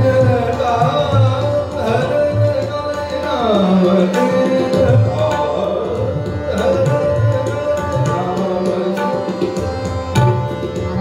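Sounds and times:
man singing: 0.0s - 9.6s
harmonium: 0.0s - 11.0s
tabla drumming: 0.0s - 11.0s
tanpura drone: 0.0s - 11.0s.

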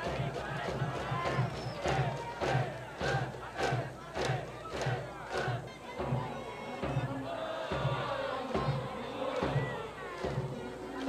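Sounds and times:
drum thumping: 0.0s - 10.6s
crowd chanting in unison: 0.0s - 11.0s.

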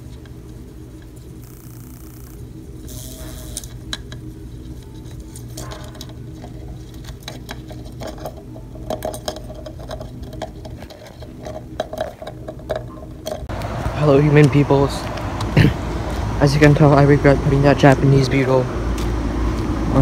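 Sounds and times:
steady low hum: 0.0s - 20.0s
beetles scratching plastic cup: 1.0s - 3.9s.

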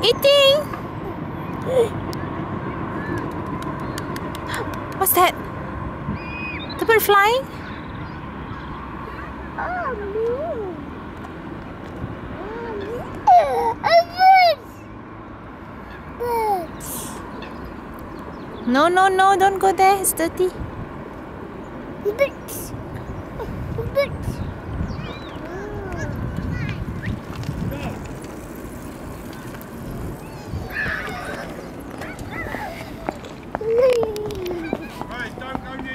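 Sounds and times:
toddler vocalising: 9.6s - 10.9s, 12.4s - 14.6s, 30.3s - 35.0s.

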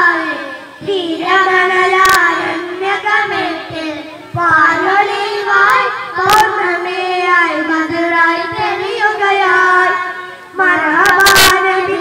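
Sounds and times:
boys singing devotional song: 0.0s - 12.0s.

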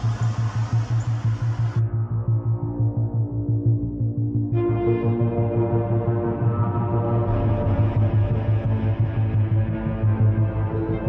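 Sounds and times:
hiss: 0.0s - 1.8s
pulsing low bass music: 0.0s - 11.0s.

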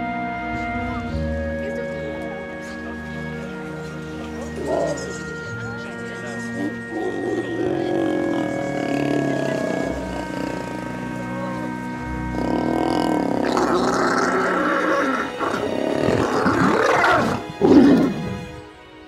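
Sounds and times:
background music: 0.0s - 19.0s
lions growling and snarling: 3.5s - 18.4s.

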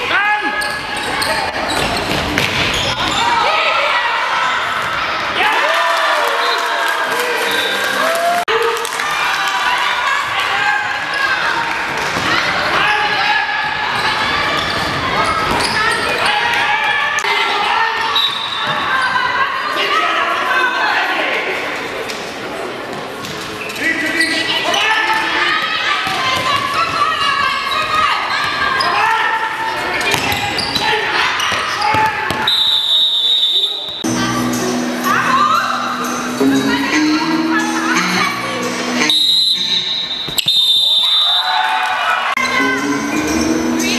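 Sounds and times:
ball bouncing on hall floor: 1.7s - 3.2s, 30.0s - 30.8s
referee's whistle blast: 32.4s - 34.0s, 39.0s - 41.6s
voices: 33.6s - 40.2s.

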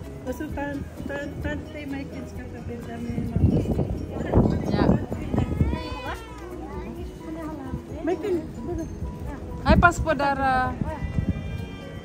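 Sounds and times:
voices in the street: 0.0s - 12.0s
child calling: 5.4s - 7.0s.

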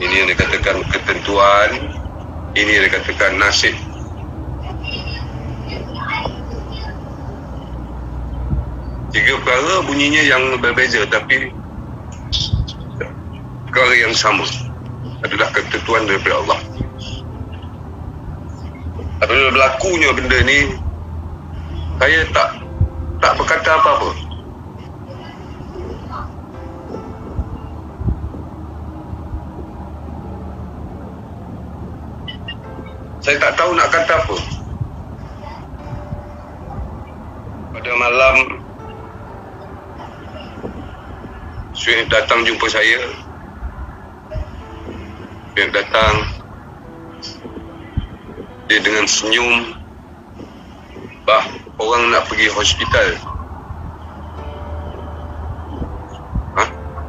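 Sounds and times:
low vehicle rumble: 0.0s - 57.0s
soft low thumps: 22.6s - 23.2s, 26.1s - 30.4s, 53.4s - 57.0s.

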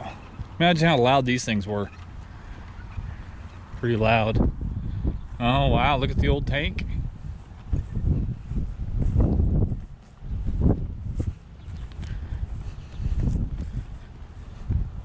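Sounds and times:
footsteps: 0.0s - 4.4s, 7.1s - 15.0s
wind buffeting microphone: 0.0s - 15.0s.

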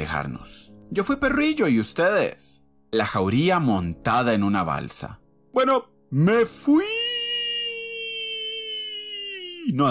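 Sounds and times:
faint background music: 0.0s - 9.9s.

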